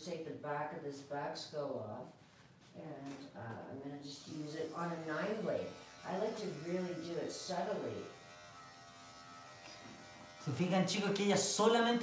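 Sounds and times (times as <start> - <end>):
electric clipper buzzing: 4.4 - 11.1.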